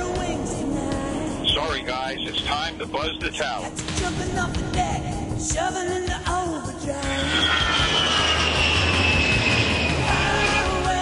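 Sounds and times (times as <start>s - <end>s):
music: 0.0s - 11.0s
jet aircraft flyby: 7.0s - 11.0s.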